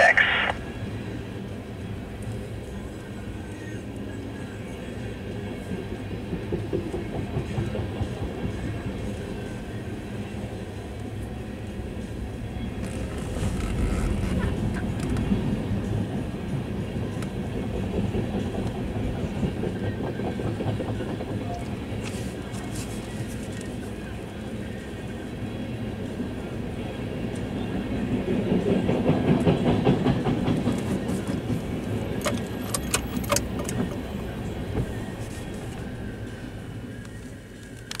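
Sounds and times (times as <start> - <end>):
train wheels rumbling on rails: 0.0 - 38.0.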